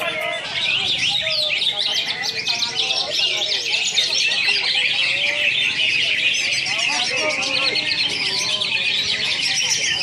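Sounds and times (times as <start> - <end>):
many birds chirping and whistling: 0.0 - 10.0.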